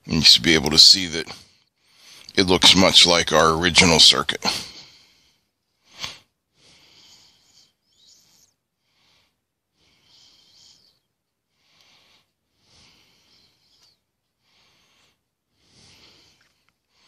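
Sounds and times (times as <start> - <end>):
breathing through the nose: 1.3 - 2.4, 4.4 - 17.0.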